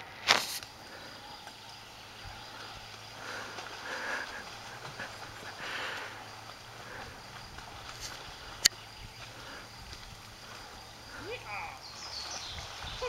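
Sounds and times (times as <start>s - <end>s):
bike wheels splashing through water: 0.1s - 13.0s.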